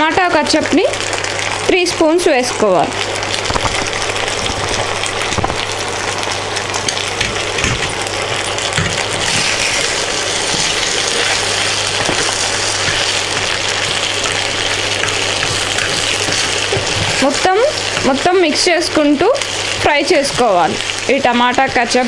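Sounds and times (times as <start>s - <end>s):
pasta sizzling in a pan: 0.0s - 22.0s.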